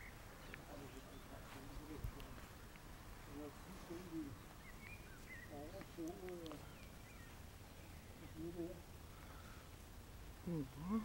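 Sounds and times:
person humming: 0:10.4 - 0:11.0.

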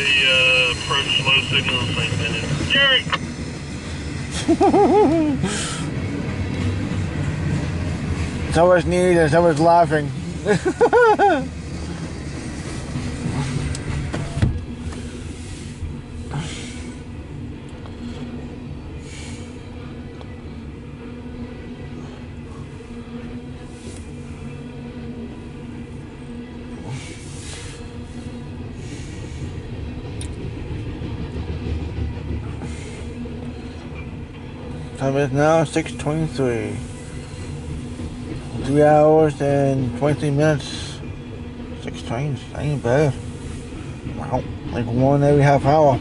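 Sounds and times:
train wheels rumbling on rail: 0:00.0 - 0:46.0.

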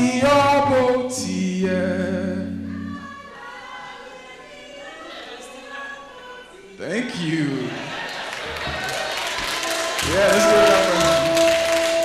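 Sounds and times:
man singing amplified: 0:00.0 - 0:02.7, 0:10.0 - 0:12.0
murmur of audience voices: 0:03.4 - 0:12.0.

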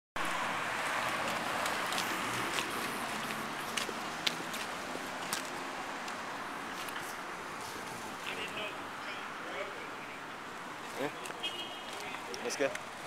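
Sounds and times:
outdoor street noise: 0:00.2 - 0:13.0.

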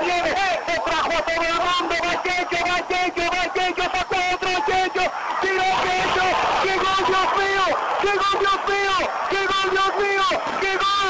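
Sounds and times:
man commentating rapidly: 0:00.0 - 0:11.0.

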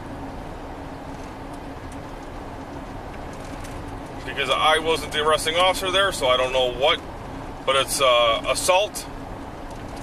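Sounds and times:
car cabin road and engine hum: 0:00.0 - 0:10.0.

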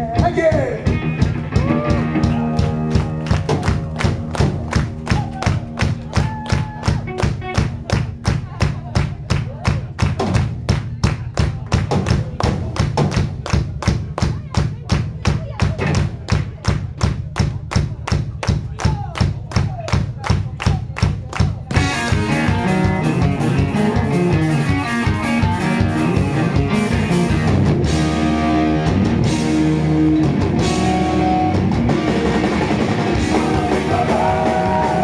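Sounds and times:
rock drums steady beat: 0:00.0 - 0:35.0.

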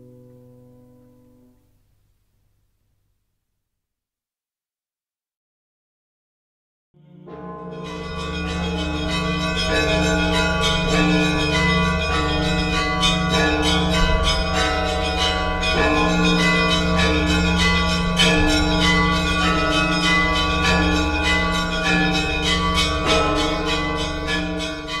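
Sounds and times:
church bells pealing: 0:07.0 - 0:25.0
deep bell hum: 0:07.0 - 0:25.0.

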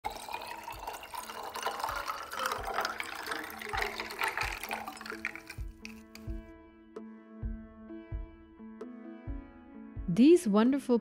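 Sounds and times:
liquid pouring into glass over ice: 0:00.0 - 0:06.4
soft background music with low beat: 0:05.4 - 0:11.0.

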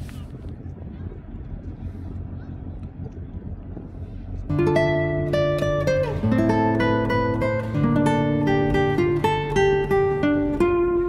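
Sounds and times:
faint voices of people: 0:00.0 - 0:04.2
outdoor background noise: 0:00.0 - 0:11.0.

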